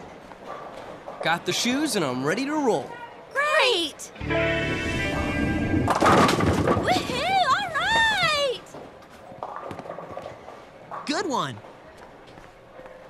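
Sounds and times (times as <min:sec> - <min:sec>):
music: 0:04.2 - 0:06.2
bowling ball rolling: 0:05.0 - 0:08.2
pins crashing: 0:05.7 - 0:08.2.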